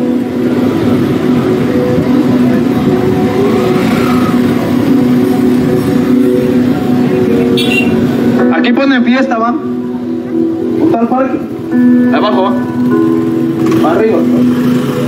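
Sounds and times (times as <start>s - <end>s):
car driving past: 3.2s - 5.0s.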